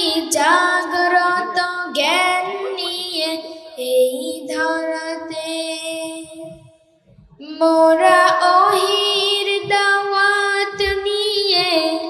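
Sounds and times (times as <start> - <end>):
boy singing into a microphone: 0.0 - 6.7, 7.4 - 12.0.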